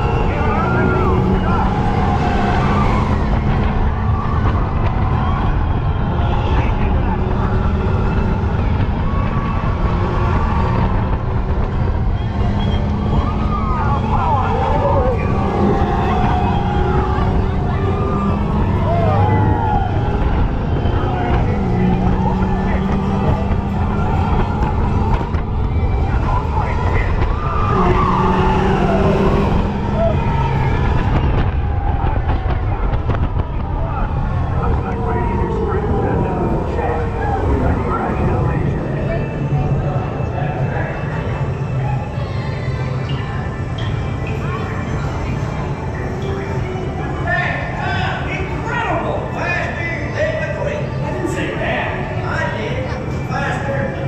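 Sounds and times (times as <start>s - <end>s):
riders shouting: 0.0s - 11.0s, 12.2s - 40.7s
ride vehicle track noise: 0.0s - 54.0s.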